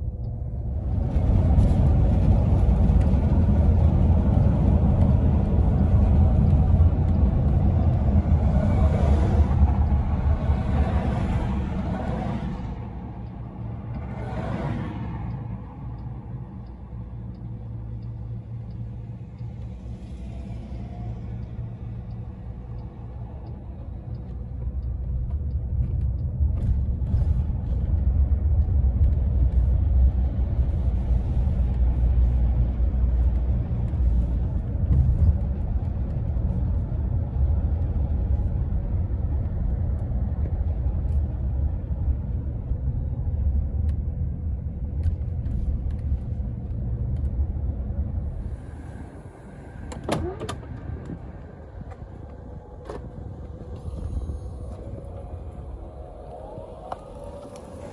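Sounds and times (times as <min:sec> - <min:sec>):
road and tyre rumble: 0:00.0 - 0:57.9.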